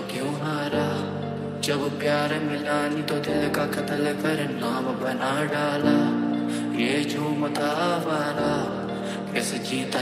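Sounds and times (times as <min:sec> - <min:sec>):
keyboard chords: 0:00.0 - 0:10.0
person singing: 0:00.0 - 0:10.0.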